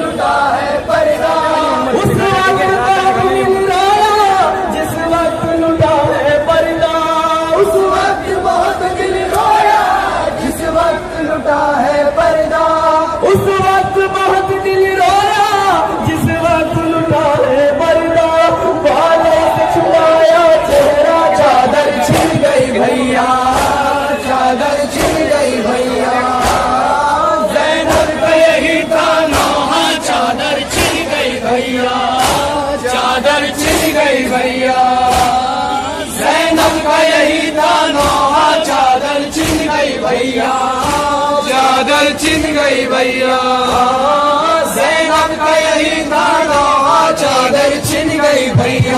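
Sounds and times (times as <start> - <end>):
voices chanting a mourning lament: 0.0 - 48.9.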